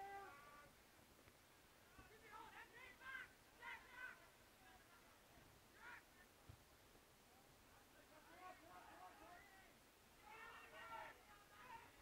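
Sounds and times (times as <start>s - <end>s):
distant shouting voices: 0.0s - 0.8s, 2.0s - 4.6s, 5.7s - 6.3s, 8.0s - 12.0s
open-air background: 0.0s - 12.0s.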